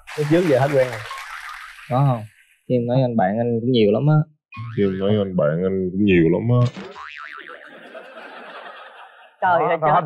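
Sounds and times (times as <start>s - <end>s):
cartoon boing: 3.8s - 7.9s.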